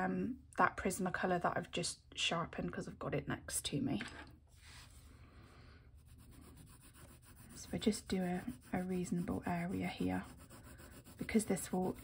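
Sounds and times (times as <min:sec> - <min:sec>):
coloured pencil scratching paper: 0:06.0 - 0:12.0.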